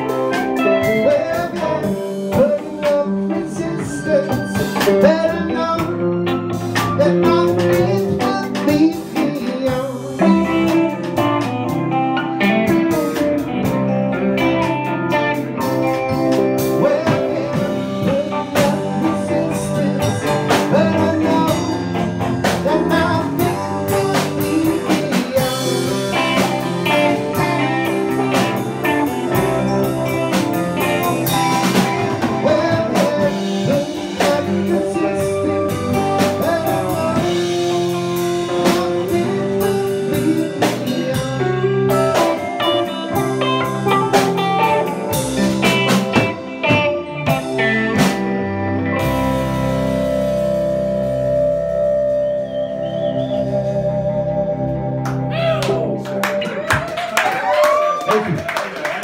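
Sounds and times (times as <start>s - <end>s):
live rock band playing: 0.0s - 59.0s.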